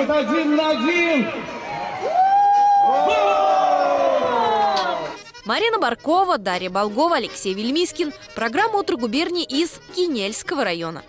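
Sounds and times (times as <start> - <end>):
children shouting and cheering: 1.6 - 5.2
long high shout: 1.7 - 5.2.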